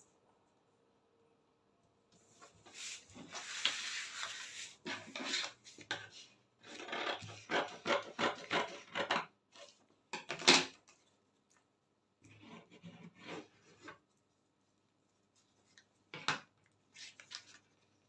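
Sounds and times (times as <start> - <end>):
paper rustling and crinkling: 16.9 - 18.0.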